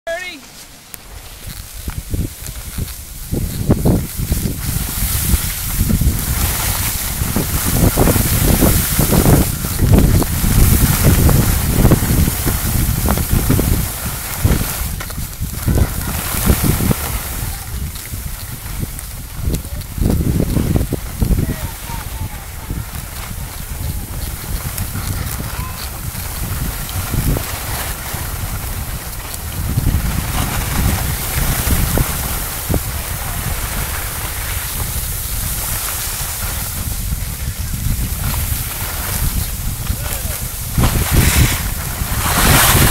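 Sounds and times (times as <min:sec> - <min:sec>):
skis sliding on packed snow: 0:00.1 - 0:42.9
wind buffeting microphone: 0:01.1 - 0:42.9.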